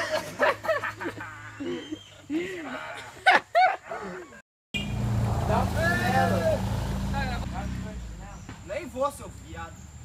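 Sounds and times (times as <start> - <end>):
young voices shouting: 5.5 - 6.7.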